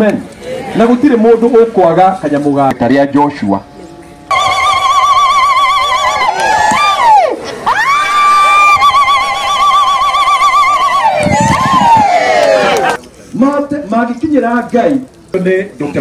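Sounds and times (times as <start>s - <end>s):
women ululating: 4.3s - 13.0s.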